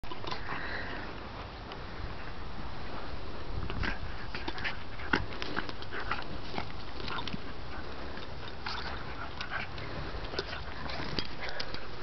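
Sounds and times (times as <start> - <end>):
dogs snuffling and huffing: 0.1 - 12.0.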